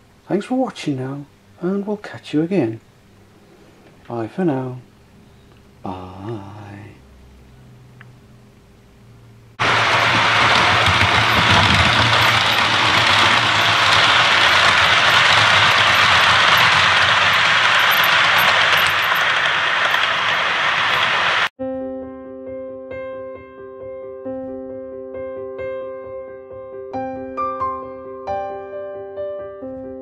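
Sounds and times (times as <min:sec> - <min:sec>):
train rumbling on rails: 0:09.6 - 0:21.5.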